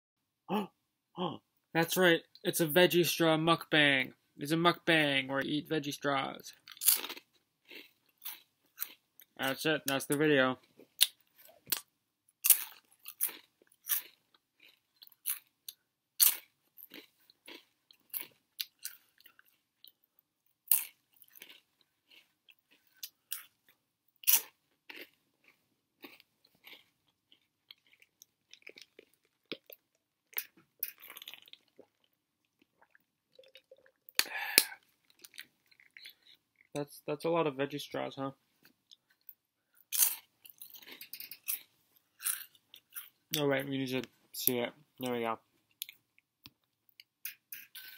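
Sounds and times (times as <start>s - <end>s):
crunchy snack being chewed: 6.6s - 9.4s, 10.9s - 36.8s, 38.6s - 43.2s.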